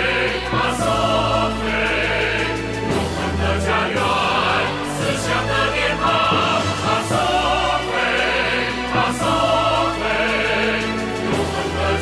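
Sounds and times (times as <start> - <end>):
choir singing over instruments: 0.0 - 12.0.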